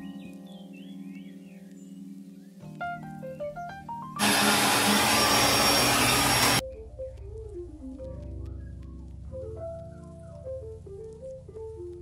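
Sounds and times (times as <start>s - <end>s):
soft background music: 0.0s - 4.2s, 6.6s - 12.0s
hair dryer blowing: 4.2s - 6.6s.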